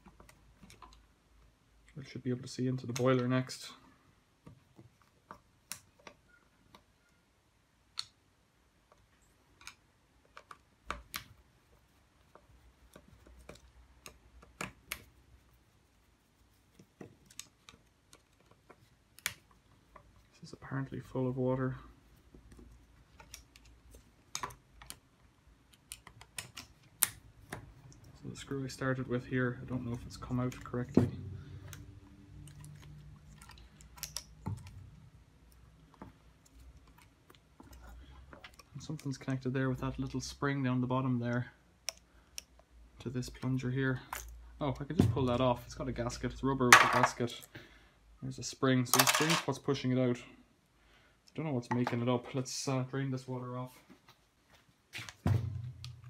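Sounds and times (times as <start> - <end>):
plastic parts clicking and tapping: 8.8 - 11.4, 22.3 - 28.2, 29.9 - 39.2.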